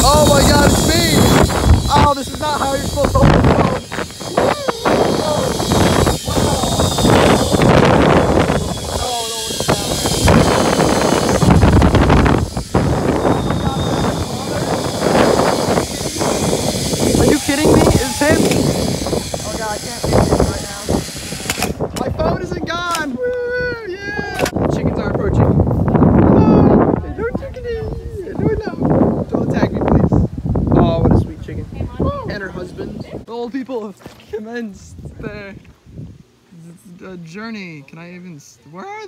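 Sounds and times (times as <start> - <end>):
wind buffeting microphone: 0.0 - 33.3, 34.8 - 36.3.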